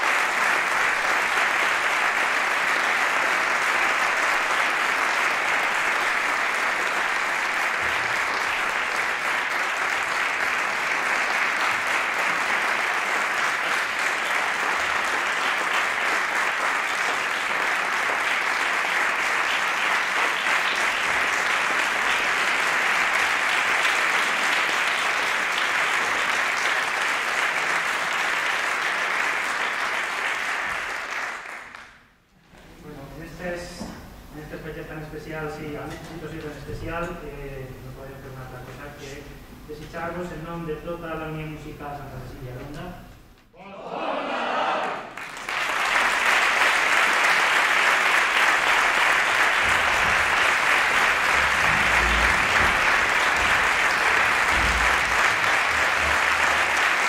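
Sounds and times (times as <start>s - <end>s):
audience applauding: 0.0s - 32.1s, 44.5s - 57.0s.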